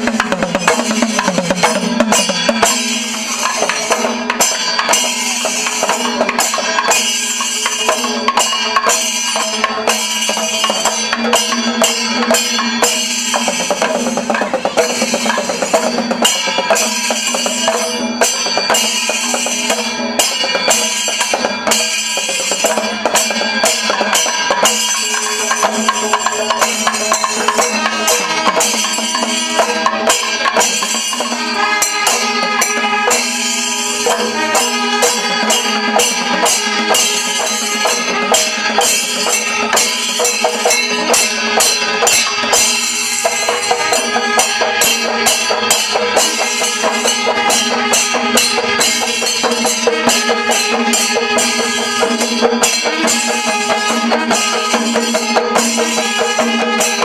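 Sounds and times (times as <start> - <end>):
barrel drums beaten fast: 0.0 - 57.0
hand cymbals clashing: 0.0 - 57.0
sustained horn tones: 31.4 - 40.4.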